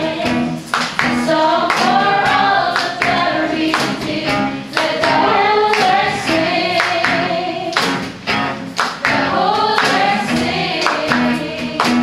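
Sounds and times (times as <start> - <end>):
voices singing together: 0.0 - 8.2, 8.9 - 12.0
acoustic guitar: 0.0 - 12.0.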